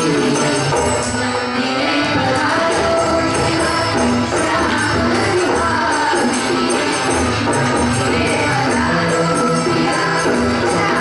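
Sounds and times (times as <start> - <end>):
children singing: 0.0 - 11.0
jingling percussion: 0.0 - 11.0
lead singer on microphone: 0.0 - 11.0
tabla and dholak drumming: 0.0 - 11.0.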